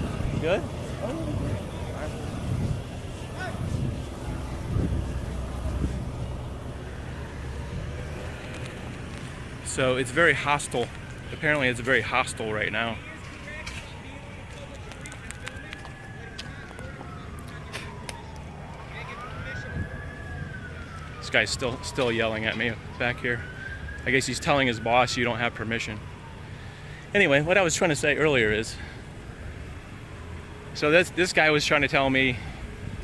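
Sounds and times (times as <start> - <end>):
emergency vehicle siren wailing: 0.0 - 33.0
road traffic rumble: 0.0 - 33.0
truck engines: 0.0 - 33.0.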